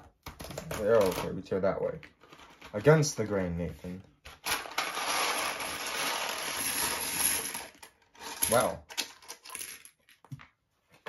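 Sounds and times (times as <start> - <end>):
plastic bricks clattering onto table: 4.3 - 10.5.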